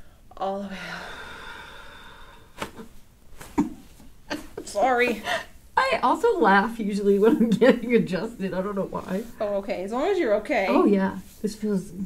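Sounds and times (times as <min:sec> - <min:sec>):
person exhaling slowly: 0:00.7 - 0:02.6.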